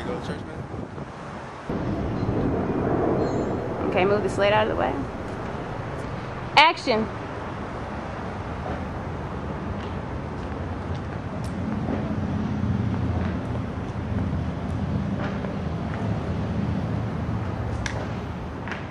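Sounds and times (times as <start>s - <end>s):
low mechanical rumble: 1.7s - 7.9s.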